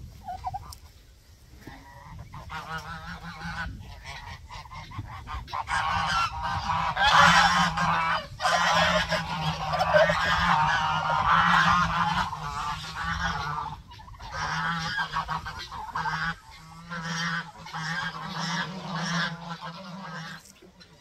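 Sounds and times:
geese honking: 0.0 - 1.0, 1.6 - 21.0.

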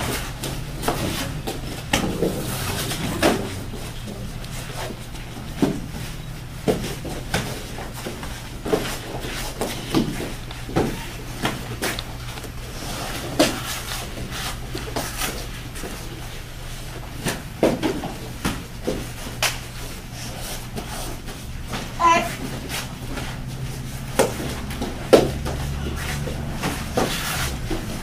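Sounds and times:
feet stamping on foam mats: 0.0 - 28.0
steady low hum: 0.0 - 28.0
padded kicks and punches landing: 24.0 - 28.0.

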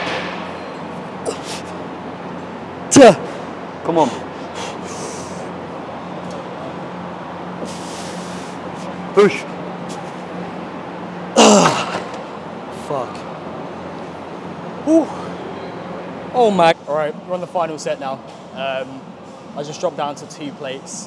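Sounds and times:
steady low hum: 0.0 - 21.0
man grunting and groaning: 11.4 - 12.0.

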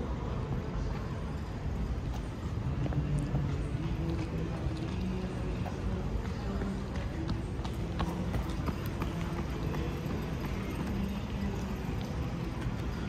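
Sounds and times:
footsteps on paved street: 0.0 - 13.0.

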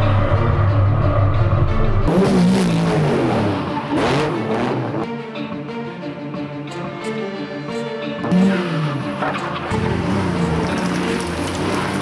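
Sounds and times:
rally car engine revving: 0.0 - 5.1, 8.2 - 12.0
background music with bass: 0.0 - 12.0.

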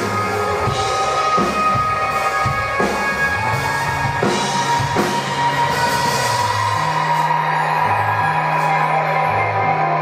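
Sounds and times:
bass holding long notes: 0.0 - 10.0
rock band playing live: 0.0 - 10.0.

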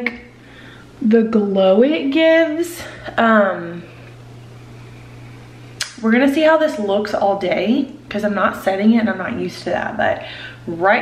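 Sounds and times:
steady low hum with hiss: 0.0 - 11.0.

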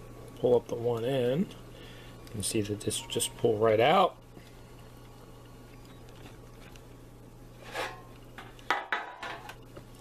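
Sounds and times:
steady low hum: 0.0 - 10.0
baking pan knocking and rattling: 8.7 - 9.5.

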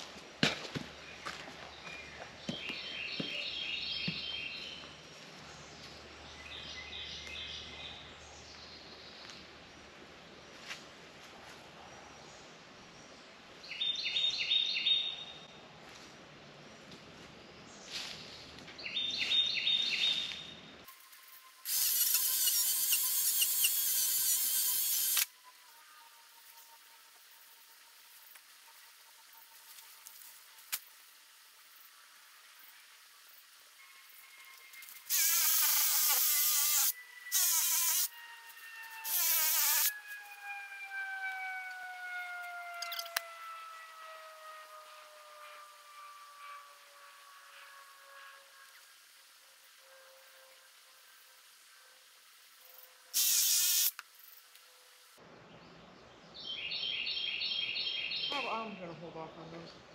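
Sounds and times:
electric chainsaw cutting branches: 20.9 - 25.4, 34.7 - 41.5, 53.2 - 54.0
faint high whine sliding down: 38.0 - 50.8.

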